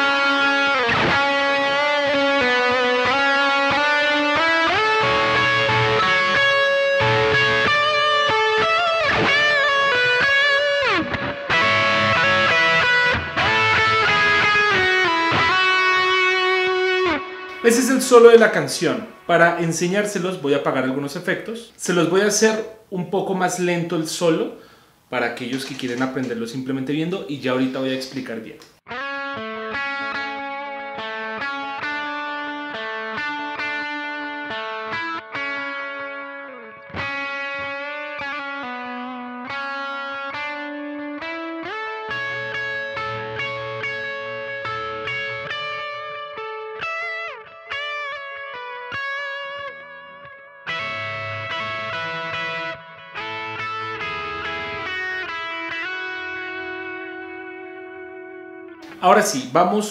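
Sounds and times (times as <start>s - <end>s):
electric guitar lead solo: 0.0s - 19.6s, 28.9s - 59.1s.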